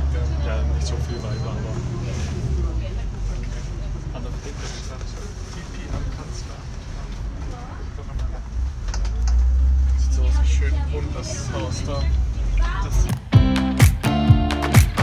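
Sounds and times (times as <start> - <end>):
faint passenger voices: 0.0 - 13.2
bus engine rumble: 0.0 - 13.4.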